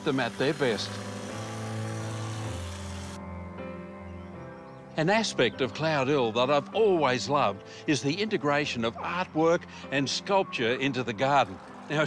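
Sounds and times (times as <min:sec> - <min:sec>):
hedge trimmer running: 0:00.0 - 0:03.2
background music: 0:00.0 - 0:12.0.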